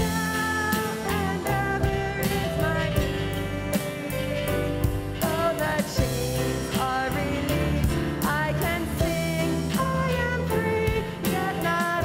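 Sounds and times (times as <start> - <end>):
drums: 0.0 - 12.0
electric guitar: 0.0 - 12.0
piano: 0.0 - 12.0
woman singing: 0.0 - 12.0.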